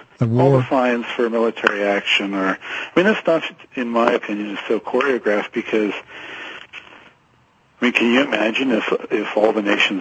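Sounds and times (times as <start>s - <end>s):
man talking: 0.0s - 6.1s, 7.8s - 10.0s
man breathing in: 2.6s - 3.0s, 6.1s - 6.7s.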